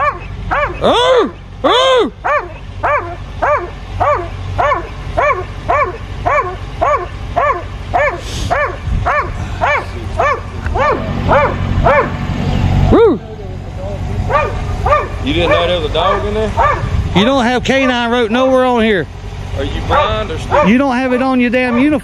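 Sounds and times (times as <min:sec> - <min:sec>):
dog barking: 0:00.0 - 0:01.2, 0:02.2 - 0:12.2, 0:14.3 - 0:17.0, 0:17.8 - 0:18.2, 0:19.9 - 0:22.0.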